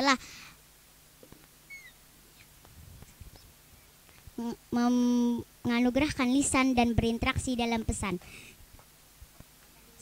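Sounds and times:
faint high chirps: 1.6s - 2.0s.

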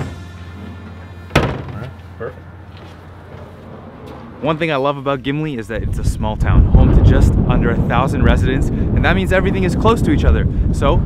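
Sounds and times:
background music: 0.0s - 2.7s
metal mail chute slamming shut: 1.3s - 2.0s.

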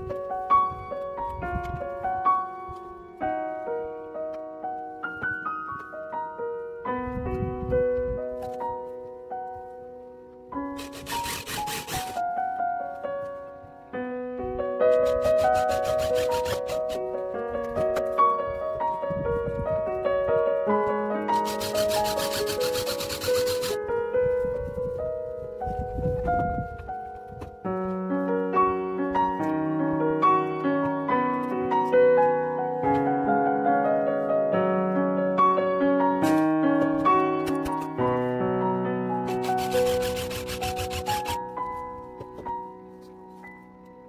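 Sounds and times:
piano music: 0.0s - 44.0s
drill driving screw into sheet metal: 10.8s - 12.2s, 15.0s - 17.0s, 21.4s - 23.8s, 39.3s - 41.4s.

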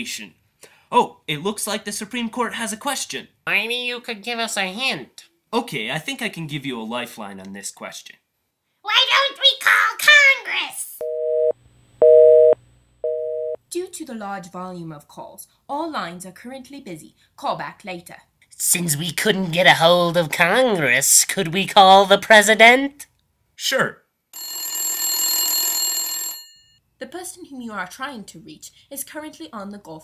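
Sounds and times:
telephone busy signal beeps: 11.0s - 13.6s.

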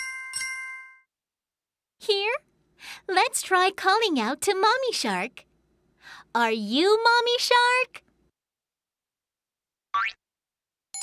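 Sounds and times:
cartoon boing: 10.0s - 10.2s.

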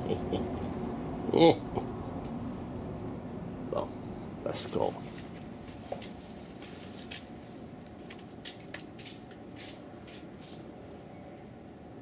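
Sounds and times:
soft scuffing sounds: 5.0s - 10.7s.

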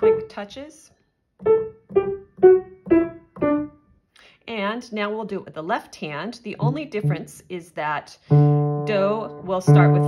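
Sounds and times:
staccato piano notes: 1.4s - 3.8s, 6.6s - 7.4s, 8.3s - 10.0s.

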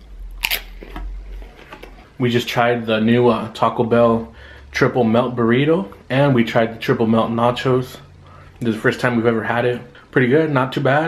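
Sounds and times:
tortilla chip crunch: 0.1s - 2.0s
chewing crunches: 0.1s - 2.1s.

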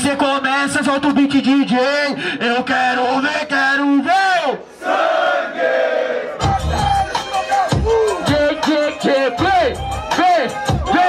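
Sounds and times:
crowd shouting in unison: 4.7s - 11.0s
man shouting a call: 7.2s - 11.0s.

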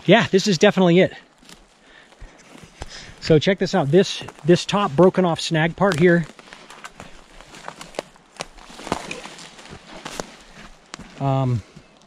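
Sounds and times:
footsteps crunching on dry twigs: 1.2s - 12.0s.

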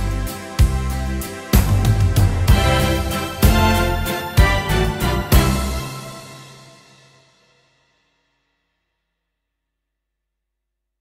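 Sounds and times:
keyboard final chord: 0.0s - 7.2s.

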